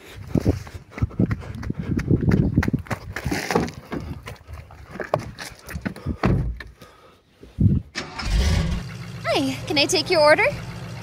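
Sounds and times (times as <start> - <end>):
hurried footsteps on grass and paving: 0.0 - 7.6.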